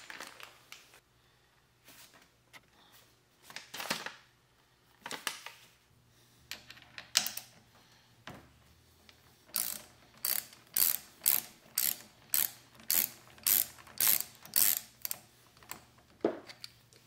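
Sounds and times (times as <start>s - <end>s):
hand ratchet clicking: 9.5s - 15.8s.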